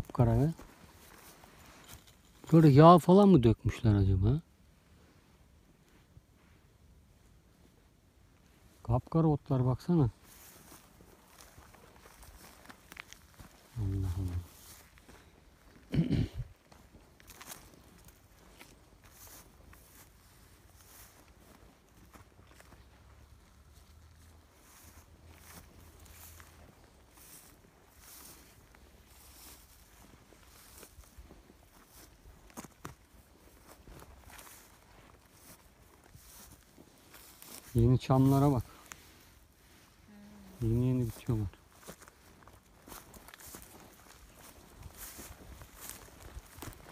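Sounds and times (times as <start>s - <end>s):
footsteps through dry grass: 0.0s - 46.9s
short bursts of voice: 13.8s - 14.5s.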